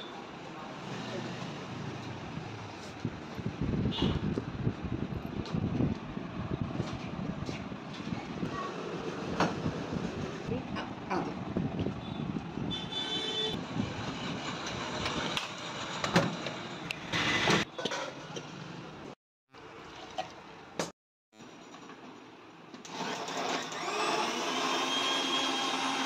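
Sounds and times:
rumble of passing vehicles: 0.3s - 17.5s.

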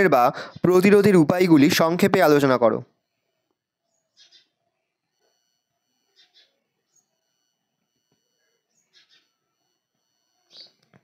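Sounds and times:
faint bird-like chirps: 3.0s - 11.0s.

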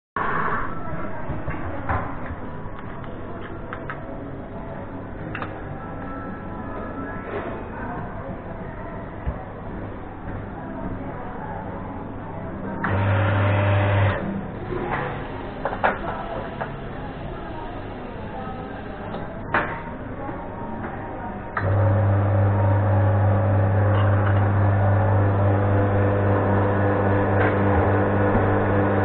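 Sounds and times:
cafe background noise: 1.2s - 29.0s
electric motor humming: 12.8s - 14.2s, 21.6s - 29.0s.

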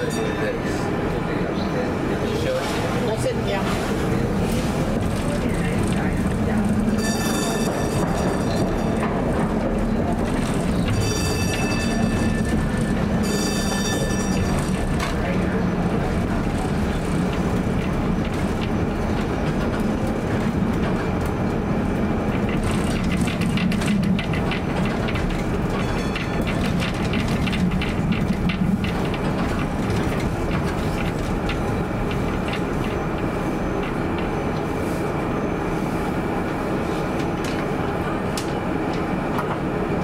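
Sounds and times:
streetcar motor and wheels humming: 0.0s - 40.0s
high squealing of wheels: 10.7s - 14.7s.

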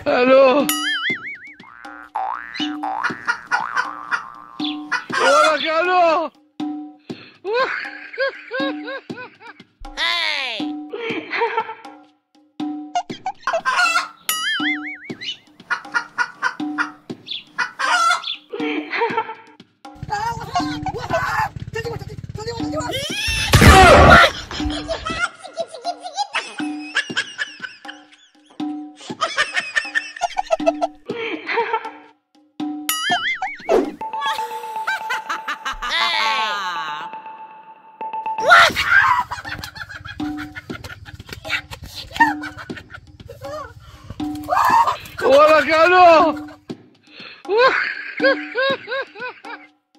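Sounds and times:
background music: 0.0s - 49.9s
chicken squawking: 3.3s - 5.7s, 13.4s - 14.3s, 15.2s - 18.4s, 22.9s - 24.5s, 38.4s - 45.2s
chicken clucking and squawking: 13.5s - 14.2s, 15.2s - 18.4s
wavering whistle-like tone: 14.5s - 15.3s.

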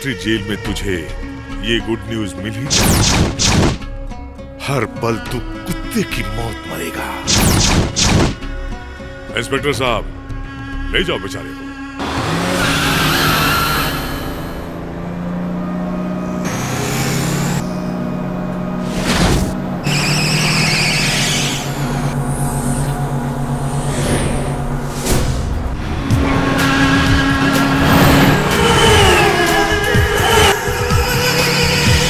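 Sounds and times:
film score of held tones: 0.0s - 32.0s
vehicles driving on road: 5.5s - 32.0s
high screech: 12.1s - 14.7s, 19.0s - 24.4s.

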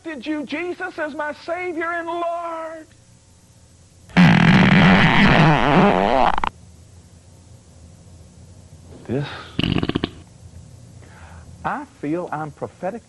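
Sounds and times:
long wobbling fart: 4.1s - 6.5s, 9.5s - 10.3s.

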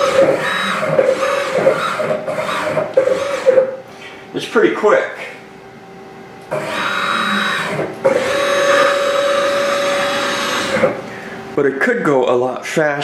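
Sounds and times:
lathe servo motors whining: 0.0s - 3.8s, 6.5s - 11.1s.

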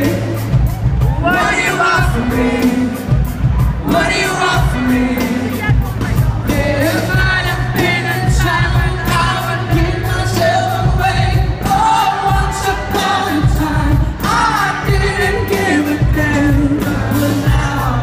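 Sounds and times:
amplified band with heavy bass: 0.0s - 18.0s
man singing into microphone: 1.1s - 18.0s.

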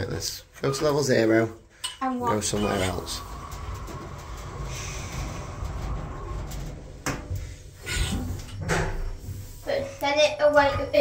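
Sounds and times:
lift doors sliding shut rumble: 2.3s - 9.2s.

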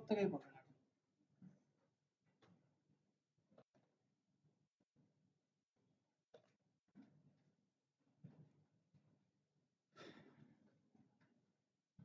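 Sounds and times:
faint exhale: 10.0s - 10.4s.

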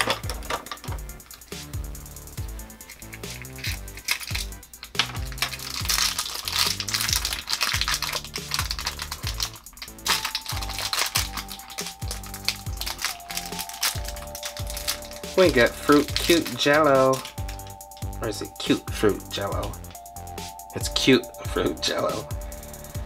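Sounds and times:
background music with beat: 0.0s - 23.0s
plastic bag crinkling: 2.7s - 17.9s.

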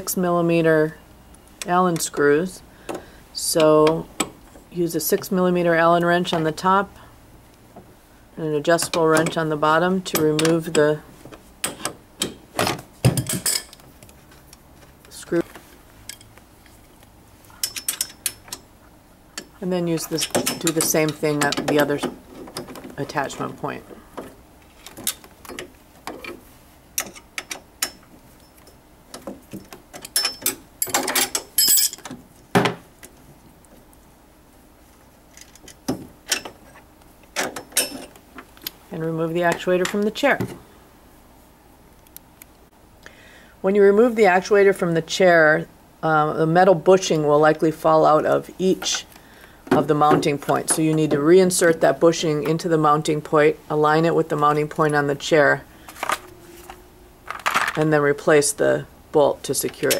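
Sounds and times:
wrenches clinking on metal bolt: 13.1s - 13.8s, 17.5s - 18.7s, 19.4s - 22.8s, 27.0s - 28.8s, 29.5s - 32.2s, 37.4s - 38.2s
metallic clinks and scrapes: 17.5s - 18.7s, 29.6s - 32.1s
faint handling noise: 55.7s - 58.0s.

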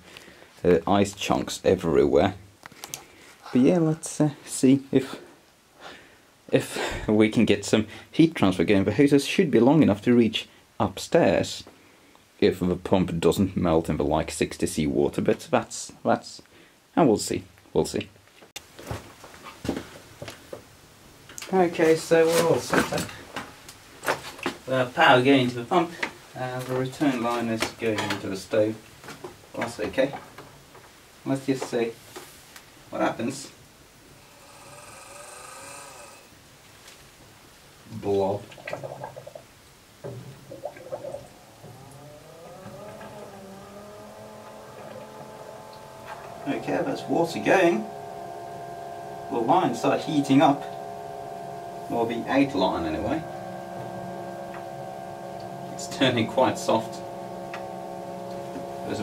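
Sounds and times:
pump motor whine: 34.2s - 36.3s, 40.4s - 59.0s
water gurgling: 38.4s - 44.0s.

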